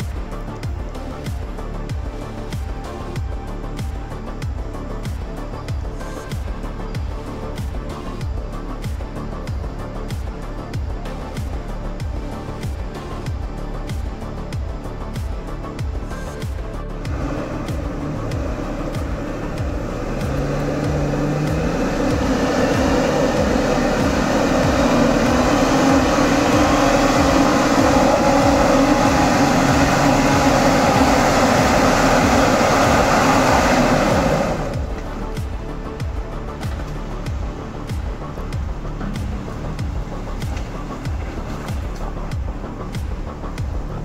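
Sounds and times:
background music with steady beat: 0.0s - 44.0s
truck engine revving hard: 16.9s - 37.1s, 37.7s - 42.8s.

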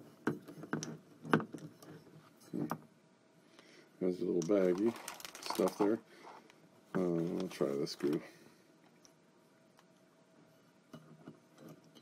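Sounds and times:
handling noise: 4.4s - 8.2s.

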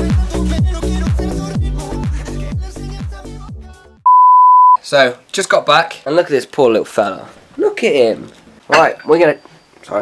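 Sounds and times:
pop music with a beat: 0.0s - 4.2s
electronic beep: 4.1s - 4.8s.

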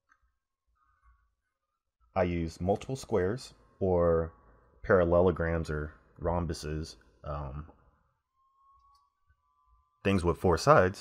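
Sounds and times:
faint thin steady tone: 0.1s - 11.0s.

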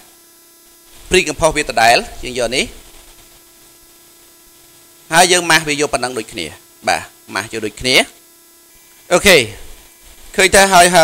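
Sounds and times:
faint electrical hum: 0.0s - 11.0s
man speaking: 1.1s - 2.8s, 5.1s - 8.2s, 9.1s - 9.7s, 10.3s - 11.0s.

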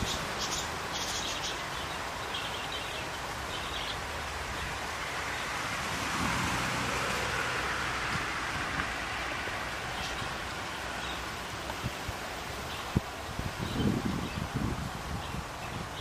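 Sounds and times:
outdoor background hiss: 0.0s - 16.0s.

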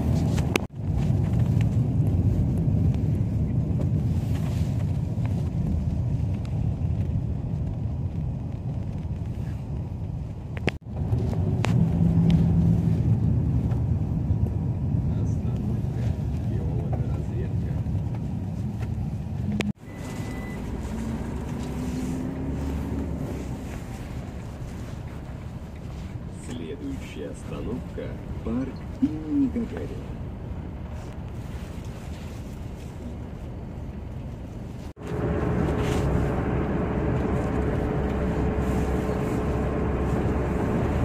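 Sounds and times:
vehicle engine and road rumble: 0.0s - 41.0s.

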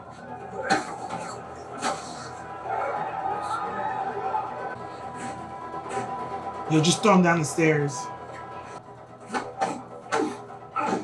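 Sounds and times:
dramatic soundtrack music: 0.0s - 11.0s.

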